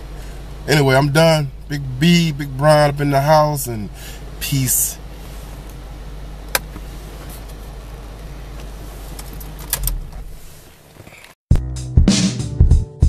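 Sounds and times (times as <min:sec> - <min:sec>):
car engine idling: 0:00.0 - 0:11.2.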